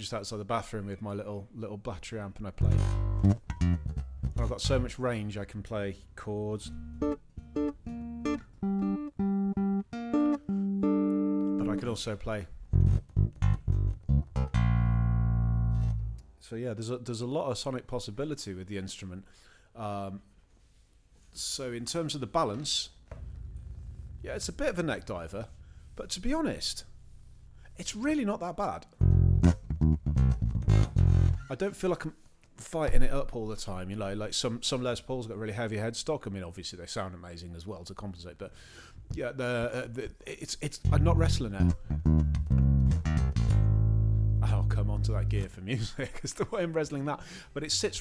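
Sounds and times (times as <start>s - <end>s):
electric bass plucked chords: 2.6s - 5.0s, 6.6s - 11.9s, 12.6s - 16.4s, 23.1s - 25.9s, 28.9s - 31.4s, 40.8s - 45.5s.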